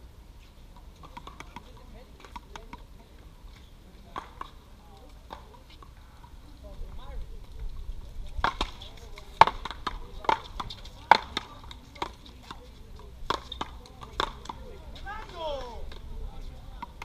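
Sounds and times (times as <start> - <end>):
paddles hitting rubber ball: 8.4 - 12.6, 13.2 - 16.1.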